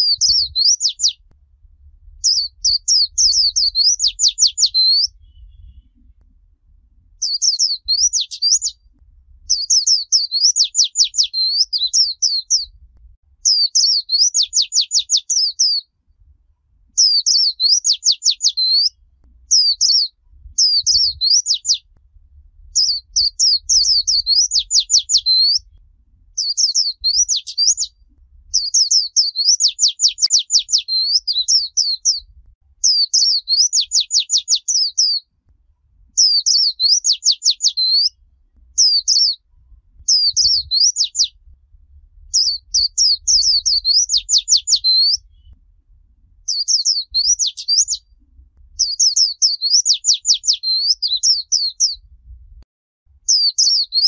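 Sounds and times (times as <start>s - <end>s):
bird singing trilled warbles: 0.0s - 1.2s, 2.2s - 6.1s, 7.2s - 8.8s, 9.4s - 12.7s, 13.4s - 15.9s, 17.0s - 21.9s, 22.7s - 25.8s, 26.4s - 35.3s, 36.2s - 39.4s, 40.0s - 41.4s, 42.3s - 45.6s, 46.5s - 48.1s, 48.8s - 52.0s, 53.3s - 54.0s.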